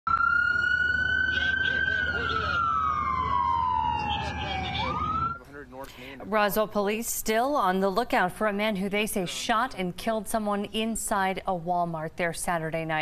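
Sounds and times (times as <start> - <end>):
emergency vehicle siren wailing: 0.1 - 5.4.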